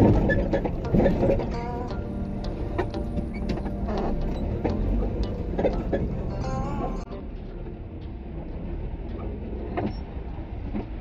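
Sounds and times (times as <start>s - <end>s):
low engine and road rumble: 0.0s - 11.0s.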